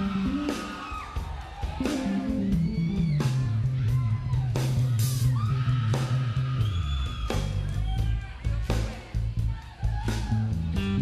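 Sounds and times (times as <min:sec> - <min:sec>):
electric bass line: 0:00.0 - 0:00.8, 0:01.7 - 0:09.6, 0:10.2 - 0:11.0
drum and cymbal hits: 0:00.0 - 0:11.0.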